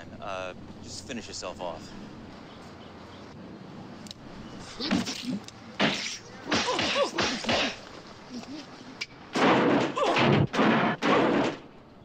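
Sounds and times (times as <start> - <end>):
whacks and thuds: 4.9 - 7.8, 9.3 - 11.7.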